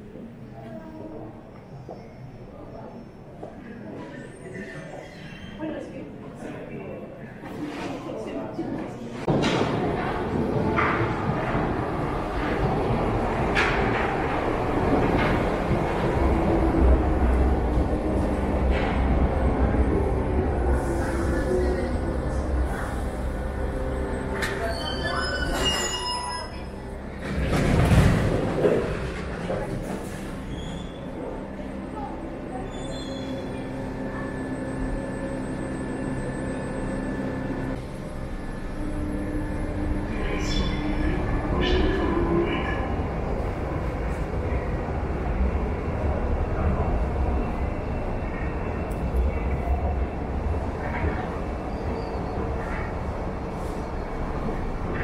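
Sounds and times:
low train rumble: 8.2 - 55.0
train brakes squealing: 24.4 - 26.8.

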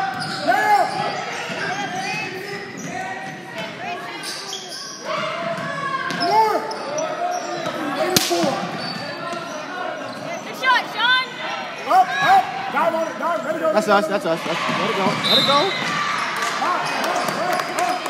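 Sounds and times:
sneakers squeaking on gym floor: 0.0 - 11.2, 14.7 - 18.0.

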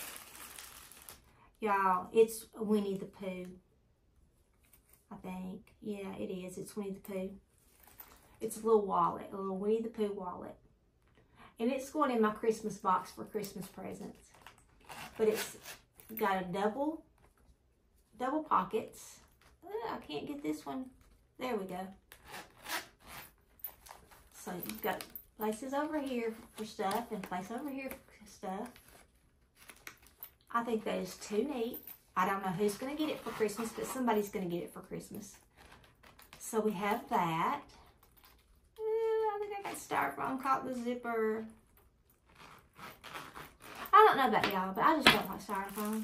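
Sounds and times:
rustling packing being handled: 0.0 - 1.3, 22.1 - 30.4, 41.6 - 46.0
wallet zipper rasping: 14.4 - 15.9, 22.1 - 24.8, 32.7 - 34.4, 42.2 - 44.1.

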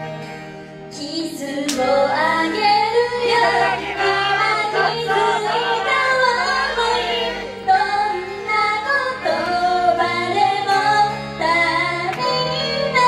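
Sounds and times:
pop backing music: 0.0 - 13.0
woman singing into a microphone: 0.9 - 13.0.

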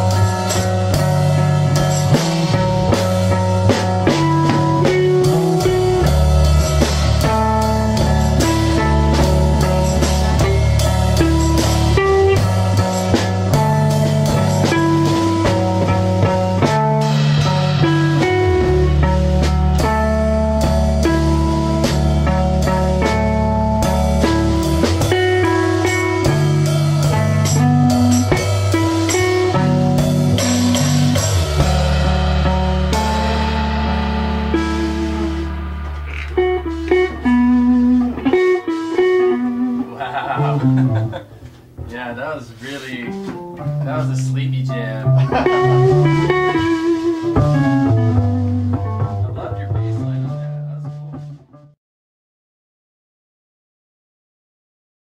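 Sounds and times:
drums and cymbals: 0.0 - 51.4
electric guitars: 0.0 - 51.4
low bass notes: 0.0 - 51.8.

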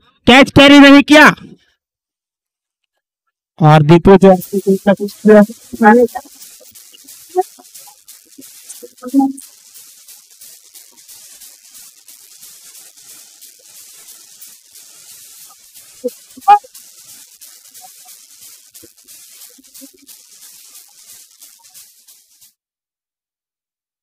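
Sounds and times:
faint steady hiss: 3.6 - 22.6.

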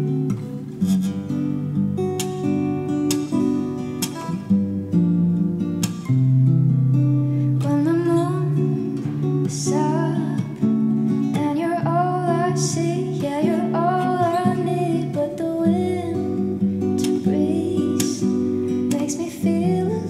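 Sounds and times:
acoustic guitar: 0.0 - 20.0
woman singing: 7.6 - 20.0.

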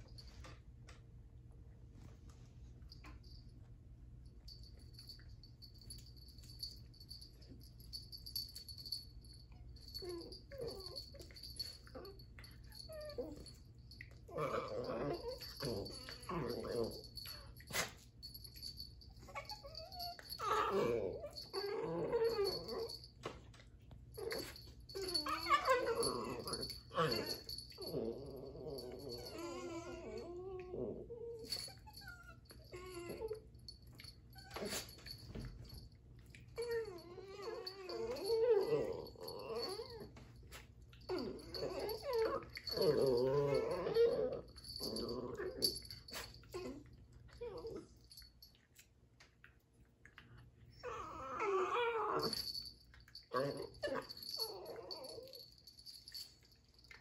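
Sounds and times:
dogs growling and whining: 9.8 - 23.1, 24.1 - 35.8, 36.4 - 48.4, 50.6 - 57.0.

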